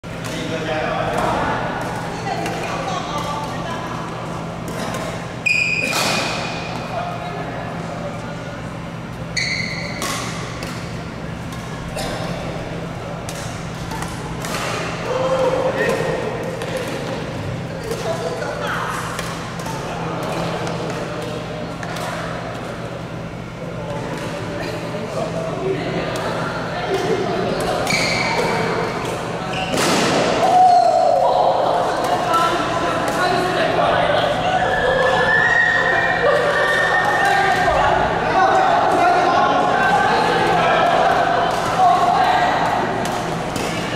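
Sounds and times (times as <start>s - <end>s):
steady low hum: 0.0s - 43.9s
shoe squeaks on court floor: 9.3s - 10.0s, 27.9s - 28.4s, 29.5s - 29.8s.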